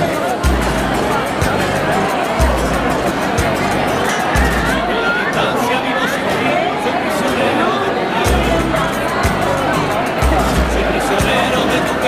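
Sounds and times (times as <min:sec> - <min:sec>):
music with heavy bass beat: 0:00.0 - 0:04.9, 0:08.3 - 0:12.0
crowd chatter: 0:00.0 - 0:12.0.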